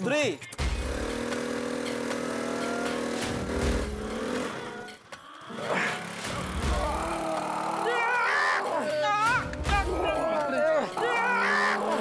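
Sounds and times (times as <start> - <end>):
motor scooter engine revving: 0.6 - 8.0.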